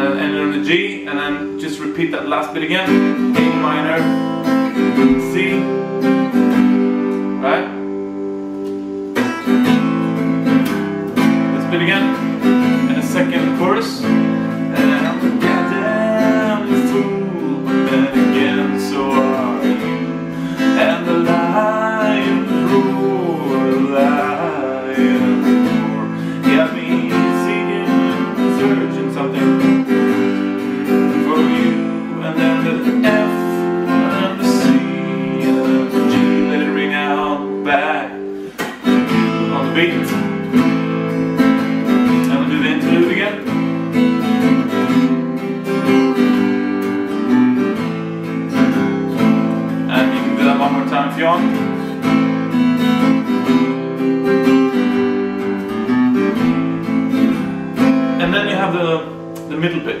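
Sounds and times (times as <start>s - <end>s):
acoustic guitar strumming: 0.0s - 60.0s.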